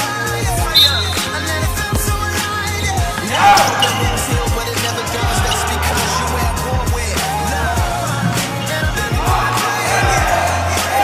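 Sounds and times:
backing music with bass notes: 0.0s - 11.0s
shoe squeal: 0.0s - 11.0s.

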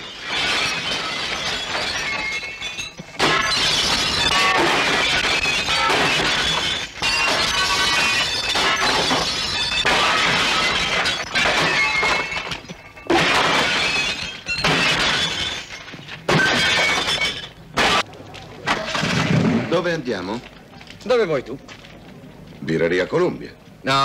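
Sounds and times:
glass window panes smashing: 0.0s - 18.1s, 18.7s - 20.0s.

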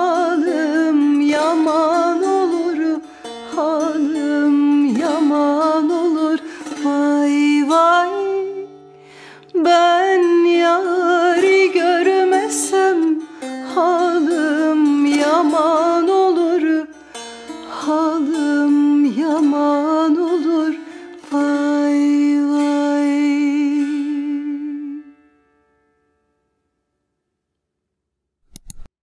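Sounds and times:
woman singing: 0.0s - 25.2s
plucked long-necked lute: 0.0s - 26.4s.

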